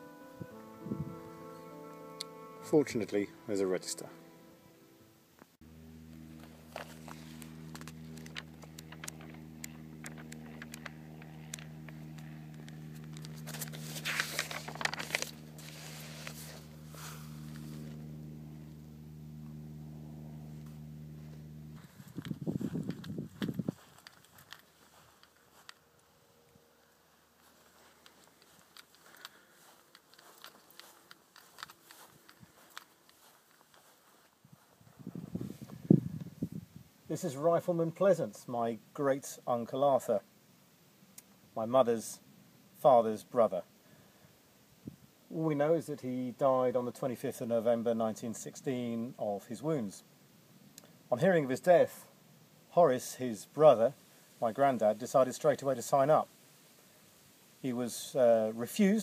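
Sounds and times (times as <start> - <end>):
steady low hum: 0.0 - 45.2
footsteps on grass: 5.7 - 36.5
pages being leafed through: 6.4 - 18.0.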